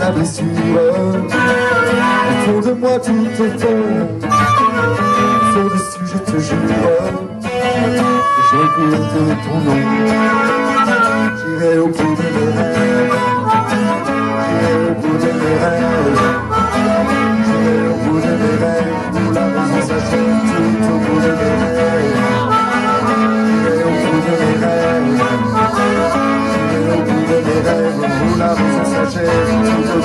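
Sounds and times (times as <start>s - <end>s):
acoustic guitar strumming: 0.0s - 30.0s
harmonica bending notes: 0.7s - 30.0s.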